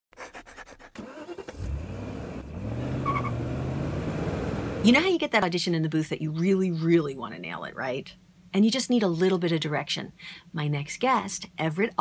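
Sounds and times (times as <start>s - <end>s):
car engine starting and running: 1.0s - 5.4s.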